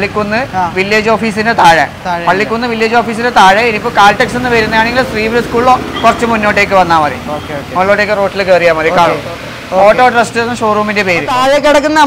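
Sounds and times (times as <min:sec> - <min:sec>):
person talking: 0:00.0 - 0:12.0
road traffic passing: 0:00.0 - 0:12.0.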